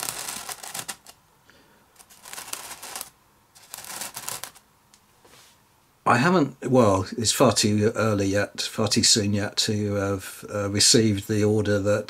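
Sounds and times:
miniature figures scraping and clicking: 0.0 - 1.2, 2.0 - 4.6.

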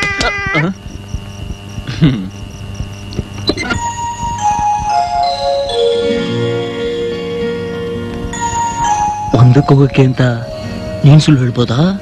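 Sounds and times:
quiet background music: 3.5 - 12.0.

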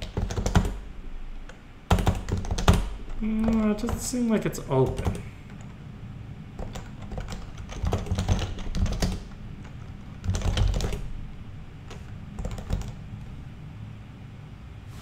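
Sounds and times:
keyboard typing: 0.0 - 0.8, 1.5 - 5.8, 6.6 - 11.1, 11.8 - 13.0.

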